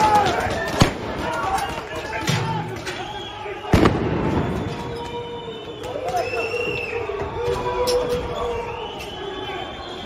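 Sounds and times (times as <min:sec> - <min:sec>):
street noise: 0:00.0 - 0:10.0
voices: 0:00.0 - 0:10.0.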